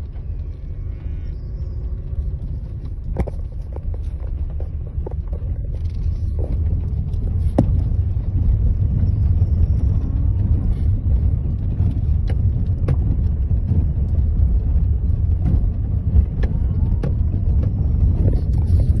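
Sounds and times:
tyres rumbling on dirt track: 0.0s - 19.0s.

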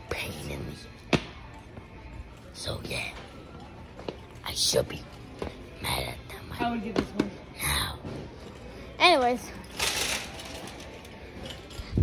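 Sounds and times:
store background noise: 0.0s - 12.0s.

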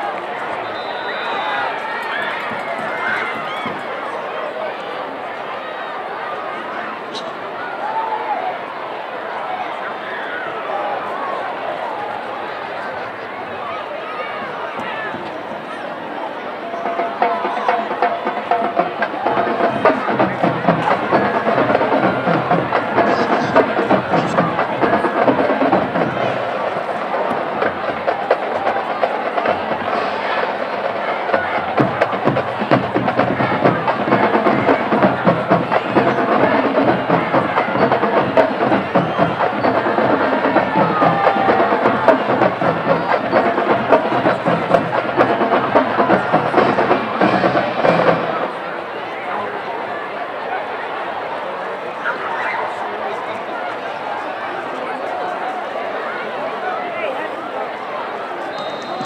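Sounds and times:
marching band horns: 0.0s - 3.8s, 16.6s - 49.8s
crowd talking: 0.0s - 59.0s
marching band drums: 16.8s - 48.6s.

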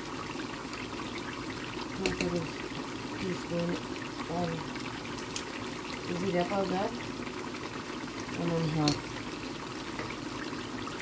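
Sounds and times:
meat sizzling in a frying pan: 0.0s - 11.0s.

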